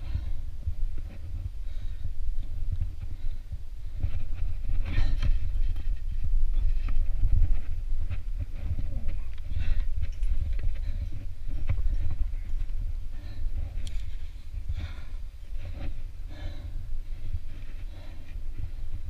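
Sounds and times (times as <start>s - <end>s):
person breathing hard: 0.0s - 6.2s, 7.1s - 19.0s
steady low rumble: 0.0s - 19.0s.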